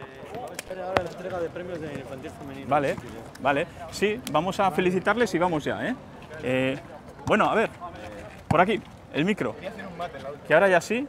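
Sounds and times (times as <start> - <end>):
distant people talking: 0.0 - 11.0.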